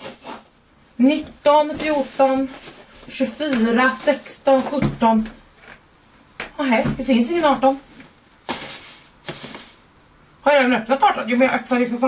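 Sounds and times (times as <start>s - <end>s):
paper filling rustling: 1.7s - 4.9s.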